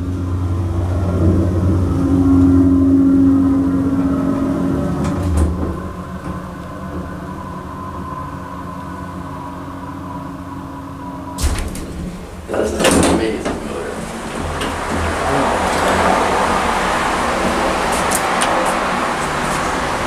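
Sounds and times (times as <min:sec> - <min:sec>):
elevator car bump stopping: 0:00.0 - 0:20.0
elevator pump hum: 0:00.0 - 0:20.0.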